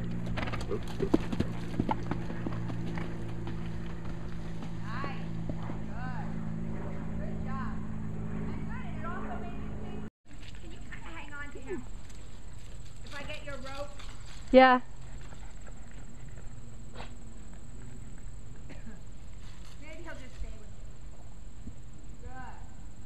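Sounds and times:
horse hoofbeats on sand: 0:00.0 - 0:06.0
steady low hum: 0:00.0 - 0:23.0.

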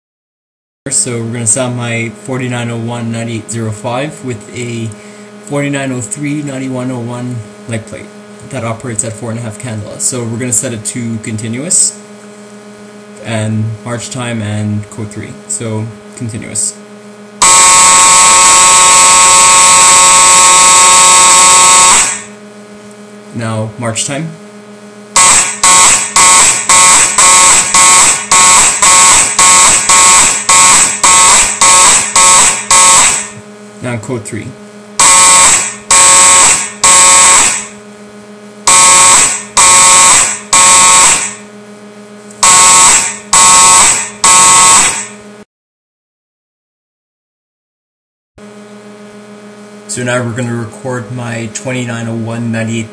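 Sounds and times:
fire alarm horn buzzing: 0:17.4 - 0:22.4, 0:25.1 - 0:33.5, 0:34.9 - 0:37.8, 0:38.6 - 0:41.6, 0:42.4 - 0:45.3.

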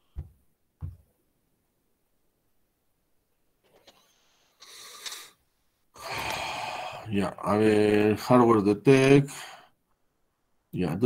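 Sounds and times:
person breathing: 0:03.8 - 0:07.1, 0:09.3 - 0:09.8.

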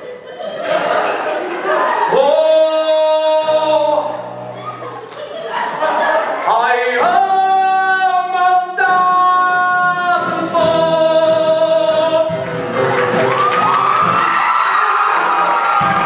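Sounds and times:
man singing showtune: 0:02.1 - 0:04.3, 0:06.5 - 0:12.6
audience cheering: 0:12.8 - 0:16.0.

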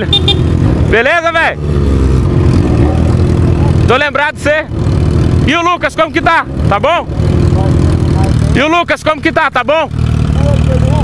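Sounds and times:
motorcycle engines idling: 0:00.0 - 0:11.0.

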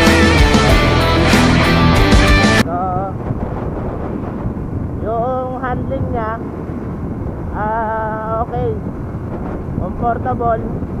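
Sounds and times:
background music: 0:00.0 - 0:02.6
wind rushing over microphone: 0:02.6 - 0:11.0.

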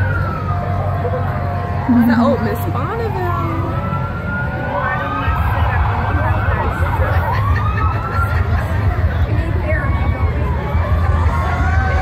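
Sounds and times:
siren wailing: 0:00.0 - 0:09.0.

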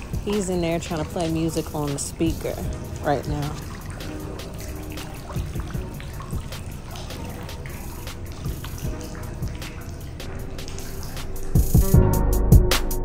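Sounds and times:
water trickling and splashing: 0:00.0 - 0:12.0
music playing: 0:00.0 - 0:13.0.

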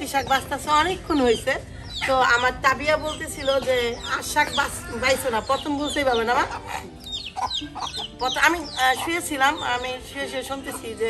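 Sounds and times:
chickens clucking: 0:00.0 - 0:11.0
women's voices: 0:00.0 - 0:11.0.

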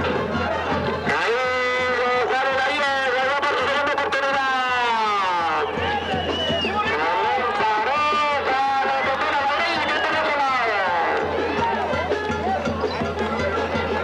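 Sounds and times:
music: 0:00.0 - 0:14.0.

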